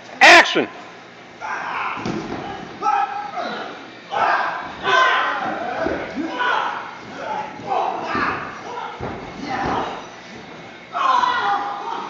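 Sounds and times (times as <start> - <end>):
people yelling and grunting: 1.4 - 10.2, 10.8 - 12.0
bodies thudding on mats: 2.0 - 2.8, 4.2 - 10.8.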